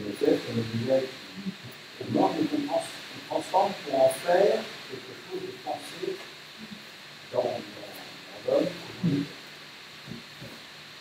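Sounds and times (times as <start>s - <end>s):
man's muffled echoing utterances: 0.0s - 9.4s
steady hiss: 0.0s - 11.0s.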